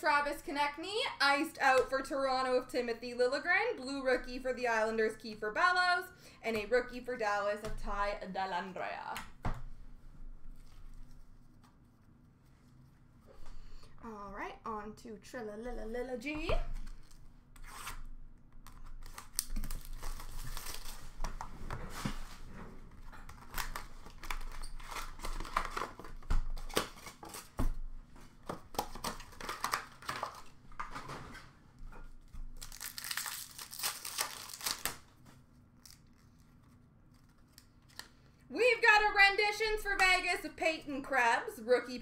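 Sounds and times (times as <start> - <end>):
wrappers and cardboard tearing: 18.7 - 21.2, 23.2 - 27.6, 28.7 - 31.1, 32.5 - 35.2, 35.8 - 38.1.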